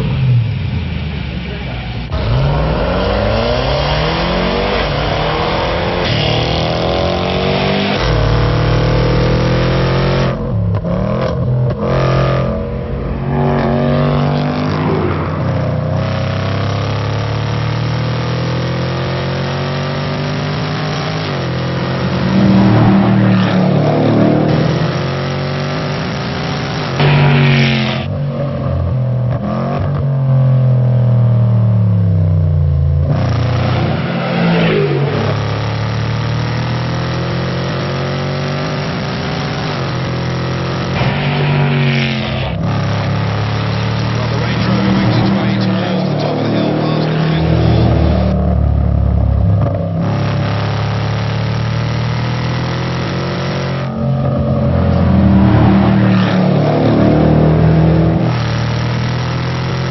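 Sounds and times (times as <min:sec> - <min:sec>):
car engine accelerating hard: 0:00.0 - 0:59.9.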